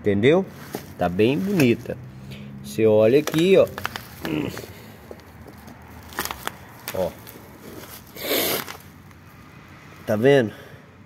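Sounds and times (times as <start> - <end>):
bubble wrap crinkling: 0.5 - 2.1, 3.0 - 9.2.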